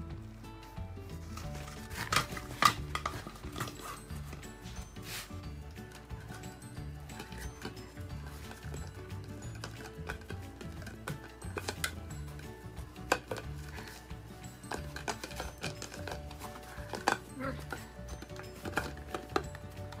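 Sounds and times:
background music: 0.0s - 20.0s
dogs biting plastic bottle: 1.3s - 4.8s, 5.8s - 20.0s.

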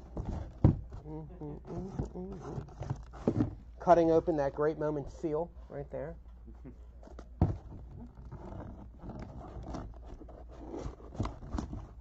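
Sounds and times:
cardboard scraping and rubbing: 0.0s - 4.0s, 7.0s - 12.0s.

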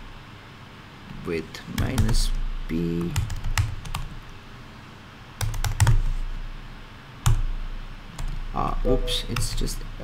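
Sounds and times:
computer keyboard typing: 1.8s - 4.2s, 5.4s - 6.1s, 7.2s - 7.4s, 8.2s - 8.4s.

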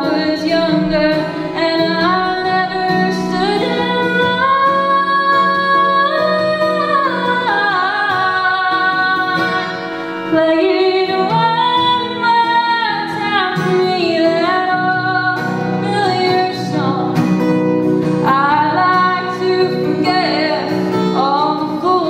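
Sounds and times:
acoustic guitar: 0.0s - 22.0s
woman singing: 0.0s - 22.0s.

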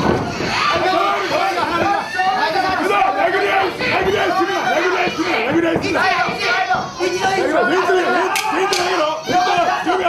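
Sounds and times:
audience chatter: 0.0s - 10.0s
men shouting: 0.5s - 10.0s.

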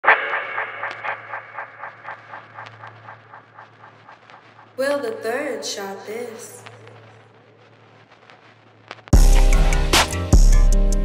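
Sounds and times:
sharp repeating logo tone: 0.0s - 4.8s.

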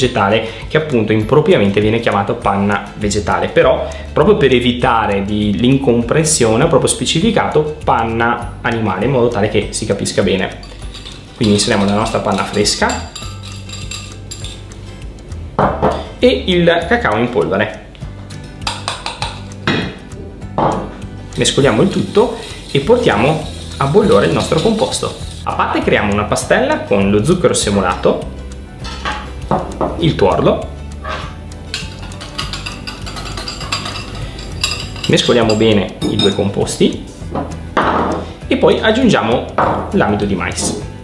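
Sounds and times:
background music with bass line: 0.0s - 41.0s
whisk clinking against saucepan: 10.6s - 14.6s, 18.7s - 19.5s, 21.4s - 25.5s, 31.7s - 36.6s.

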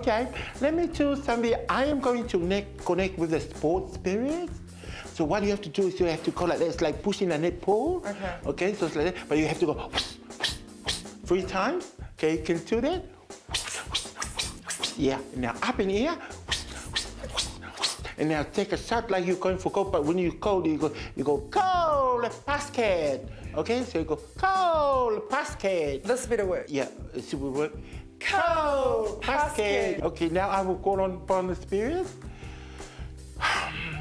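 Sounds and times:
low background music: 0.0s - 34.0s
breathy whooshes: 32.2s - 34.0s
man exhaling loudly: 32.4s - 34.0s.

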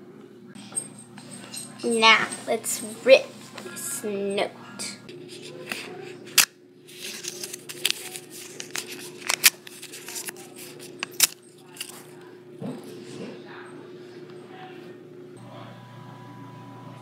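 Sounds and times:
paper crackling: 5.1s - 12.1s
paper ripping: 5.2s - 12.0s.

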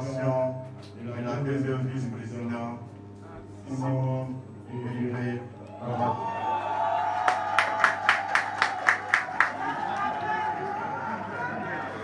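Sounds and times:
crowd clapping in unison: 6.6s - 12.0s.

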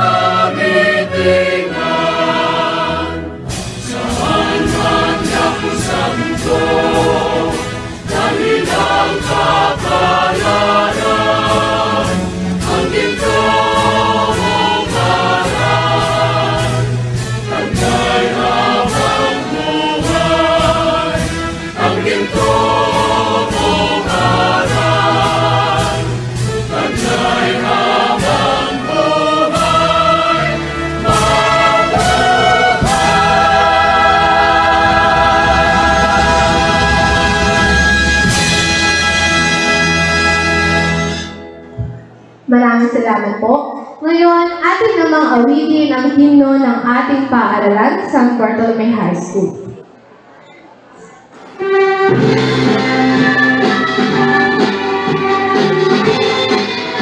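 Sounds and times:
choir singing a hymn: 0.0s - 41.2s
instrumental accompaniment with beat: 2.9s - 42.4s, 51.5s - 57.0s.

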